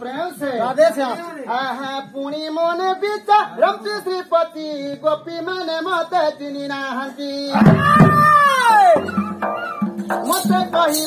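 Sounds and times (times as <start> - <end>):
person crying out: 7.6 - 10.0.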